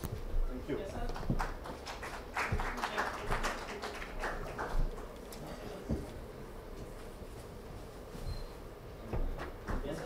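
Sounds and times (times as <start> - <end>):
audience clapping: 1.0 - 5.4.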